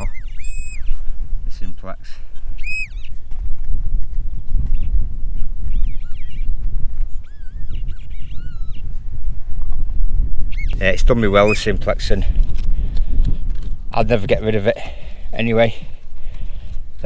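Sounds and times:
faint high-pitched calls: 0:00.0 - 0:00.9, 0:02.6 - 0:03.2, 0:07.1 - 0:08.9
wind rumbling on microphone: 0:00.0 - 0:17.0.

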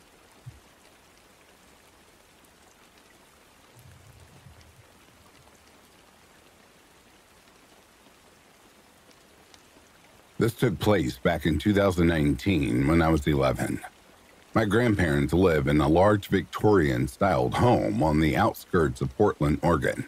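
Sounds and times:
faint steady rain: 0:00.0 - 0:20.0
faint low rumble: 0:03.6 - 0:06.0.

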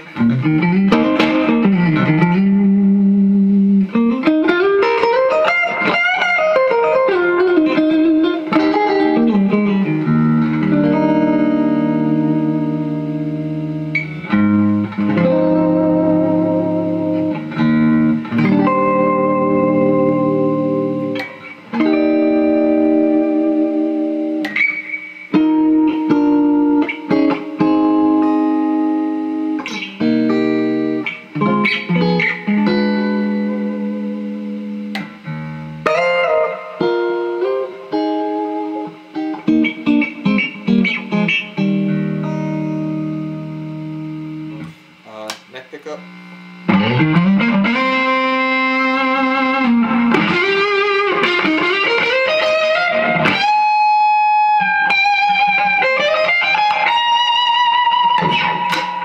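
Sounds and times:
fuzz electric guitar: 0:00.0 - 0:59.0.

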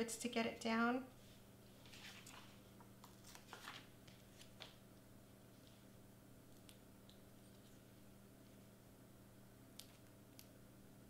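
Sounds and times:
faint steady hum: 0:00.0 - 0:11.0
paper rustling: 0:01.8 - 0:04.8.

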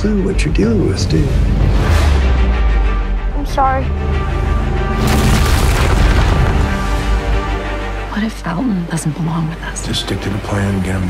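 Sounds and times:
trailer music: 0:00.0 - 0:11.0
deep cinematic boom: 0:01.3 - 0:07.7.

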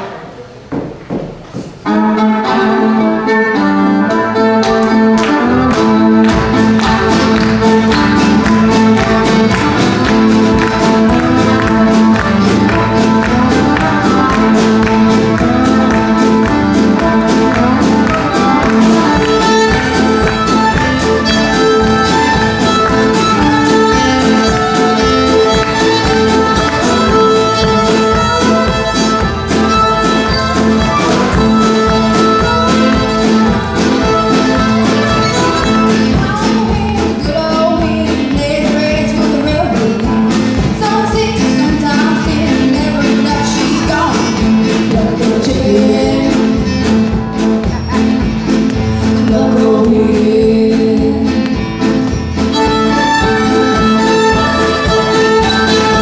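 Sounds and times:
fast fiddle tune with band: 0:01.8 - 0:56.0
driving drum beat: 0:04.6 - 0:56.0.

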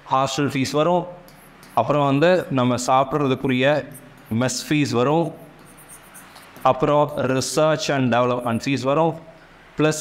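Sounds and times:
marker pen rubbing on board: 0:01.2 - 0:08.8
man talking: 0:01.8 - 0:05.5, 0:06.6 - 0:10.0.

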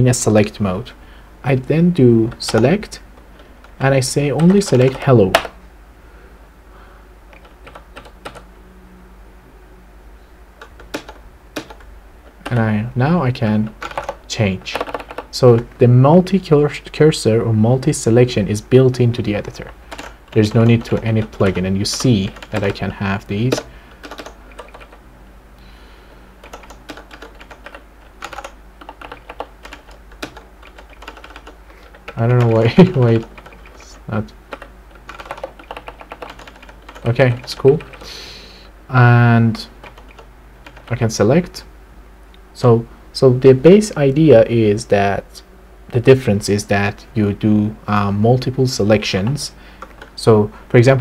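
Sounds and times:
low room hum: 0:00.0 - 0:51.0
keyboard typing: 0:02.2 - 0:05.6, 0:07.3 - 0:08.5, 0:10.6 - 0:12.8, 0:13.6 - 0:15.8, 0:19.3 - 0:25.0, 0:26.4 - 0:38.2, 0:39.8 - 0:41.0, 0:49.7 - 0:50.8.

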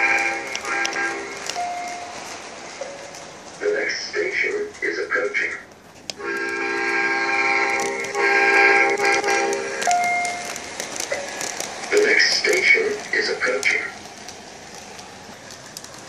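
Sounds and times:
model train horn blasts: 0:00.0 - 0:01.3, 0:06.2 - 0:09.7.

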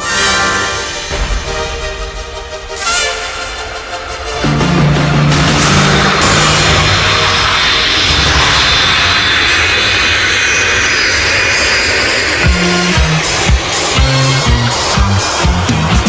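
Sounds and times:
jet engine noise: 0:00.0 - 0:16.0
disco beat with kick and bass: 0:12.4 - 0:16.0.

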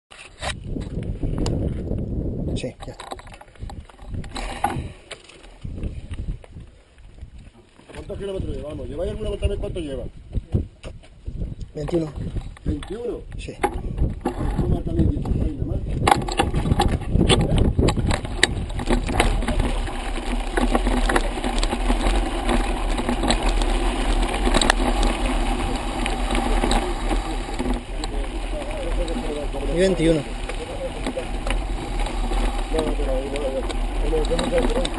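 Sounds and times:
bike tyres crunching over gravel: 0:00.1 - 0:02.3, 0:03.2 - 0:34.9
camera handling rumble: 0:00.1 - 0:08.1, 0:10.5 - 0:34.9
bike rattling: 0:00.1 - 0:34.9
wind on microphone: 0:00.3 - 0:34.9.

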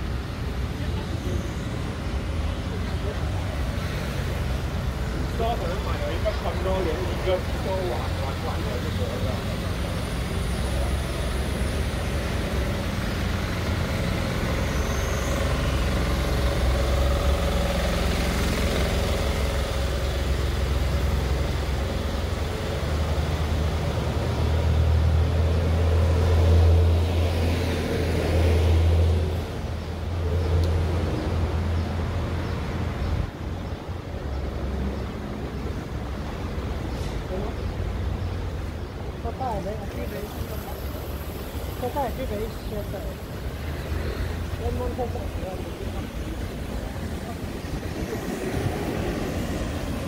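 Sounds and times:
road traffic rumble: 0:00.0 - 0:50.0.

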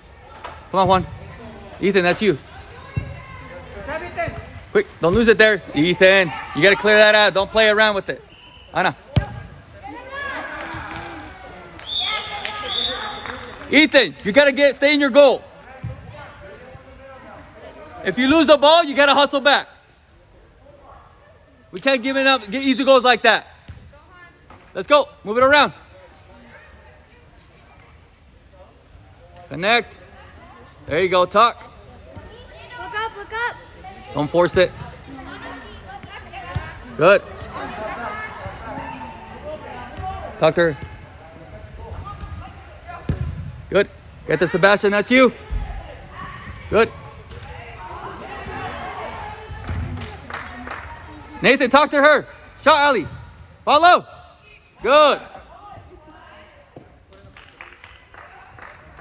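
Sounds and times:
soccer ball kicked thud: 0:09.1 - 0:09.5.

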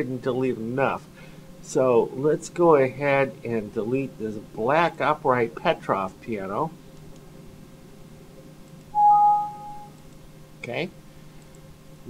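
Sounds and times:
computer alert tone: 0:09.0 - 0:10.0.

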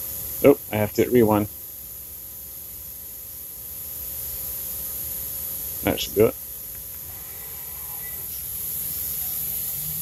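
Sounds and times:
faint steady tone: 0:00.0 - 0:10.0
machine hum and hiss: 0:00.0 - 0:10.0.

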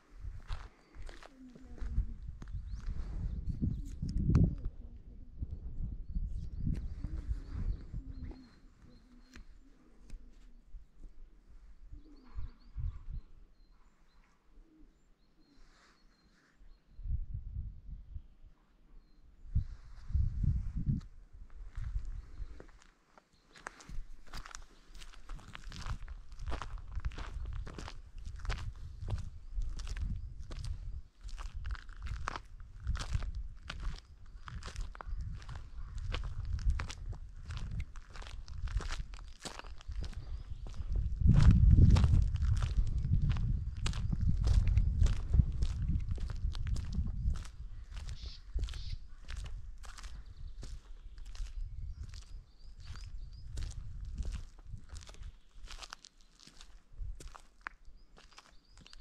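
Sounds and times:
footsteps on mountain ground: 0:00.2 - 0:03.0, 0:20.8 - 0:59.0.

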